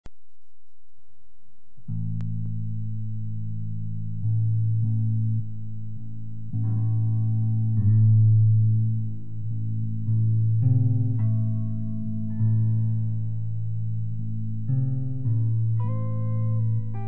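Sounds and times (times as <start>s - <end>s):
bass guitar low held notes: 1.8s - 17.0s
guitar: 1.8s - 17.0s.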